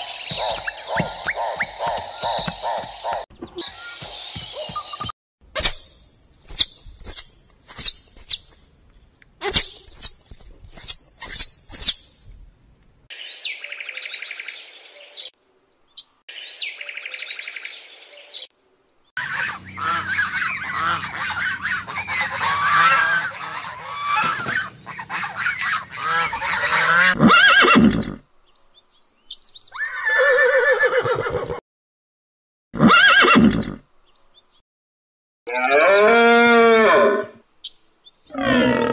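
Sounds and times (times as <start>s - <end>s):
high falling chirps: 0.0s - 8.6s
geese honking and gabbling: 19.2s - 27.5s
horse whinnies: 27.0s - 28.2s, 29.8s - 31.6s, 32.8s - 33.8s.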